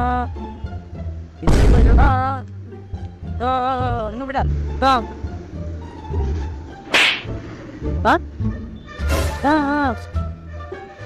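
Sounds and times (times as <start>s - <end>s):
low bass background music: 0.0s - 11.0s
sharp crack: 6.9s - 7.4s.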